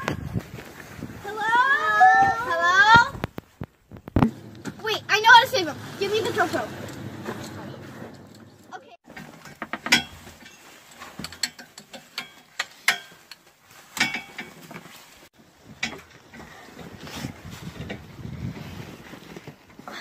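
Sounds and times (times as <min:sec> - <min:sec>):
boots climbing metal ladder: 0:06.9 - 0:15.0.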